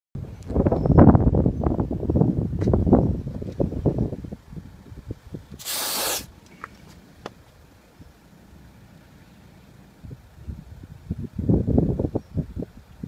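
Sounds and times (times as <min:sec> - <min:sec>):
wind and handling noise on microphone: 0:00.2 - 0:08.2, 0:09.9 - 0:13.0
aerosol can hissing: 0:05.6 - 0:06.3.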